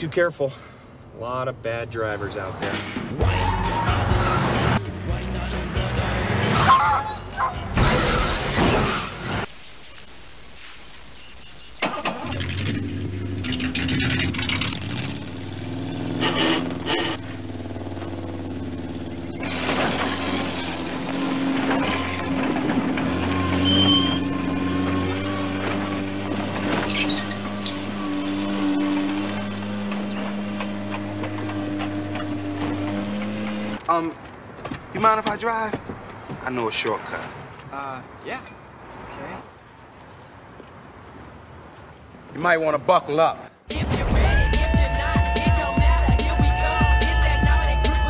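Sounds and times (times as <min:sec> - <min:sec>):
car engine: 0:11.8 - 0:33.9.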